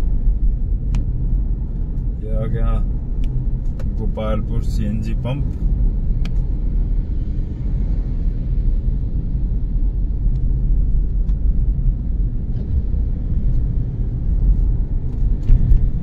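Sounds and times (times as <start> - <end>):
engine and tyre rumble: 0.0 - 16.0.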